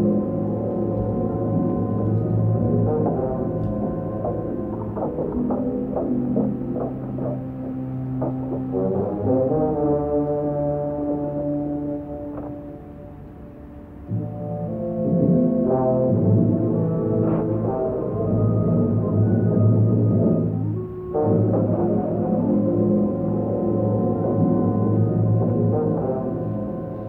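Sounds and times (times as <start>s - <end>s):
muffled orchestral music with brass: 0.0s - 27.0s.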